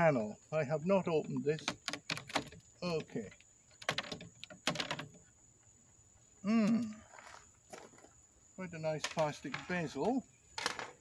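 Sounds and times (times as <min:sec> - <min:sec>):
plastic frame clicking and knocking: 0:01.1 - 0:05.2.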